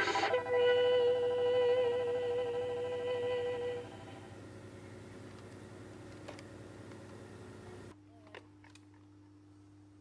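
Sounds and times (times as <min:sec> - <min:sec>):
high sung note with waver: 0:00.0 - 0:04.4.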